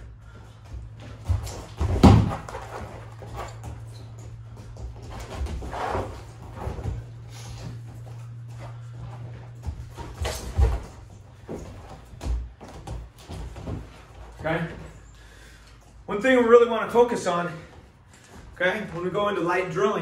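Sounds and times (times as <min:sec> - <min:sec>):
steady low hum: 0:00.0 - 0:20.0
bodies thudding on foam mat: 0:00.9 - 0:03.8.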